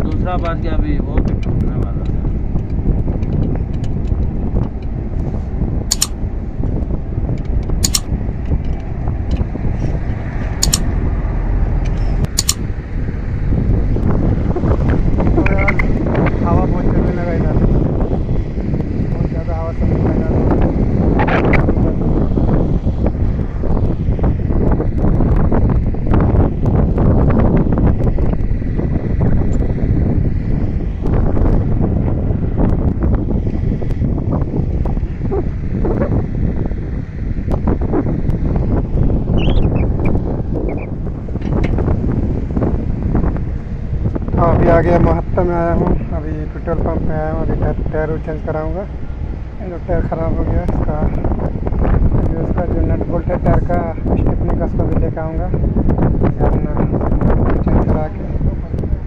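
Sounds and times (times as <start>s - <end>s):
wind rumbling on microphone: 0.0s - 59.0s.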